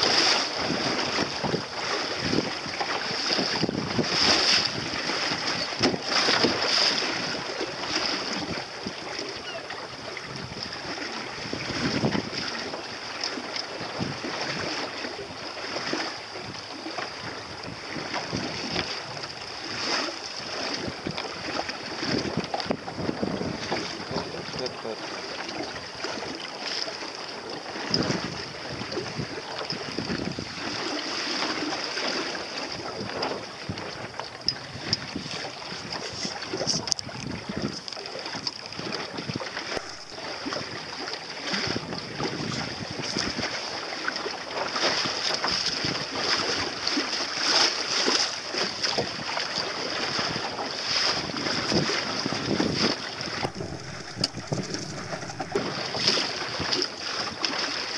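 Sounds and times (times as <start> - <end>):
wind buffeting microphone: 0.0 - 12.7, 13.8 - 25.0, 27.7 - 30.9, 32.7 - 40.9, 41.5 - 43.6, 50.1 - 57.5
water rushing past boat: 0.0 - 57.9.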